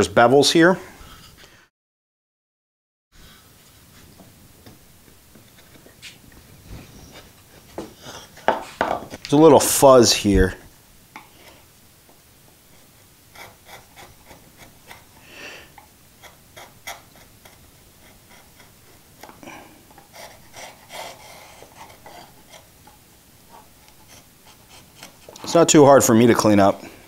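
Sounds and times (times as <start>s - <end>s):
chisel scraping wood: 12.7s - 25.6s.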